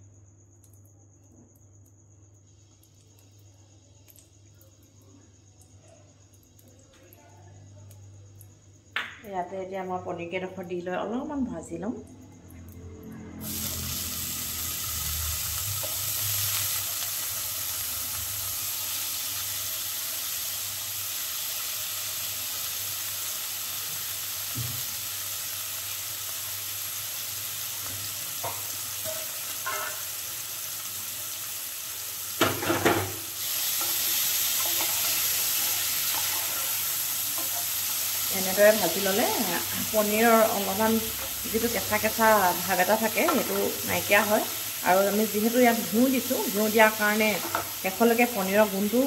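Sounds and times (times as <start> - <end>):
cheese sizzling in a pan: 13.3 - 49.0.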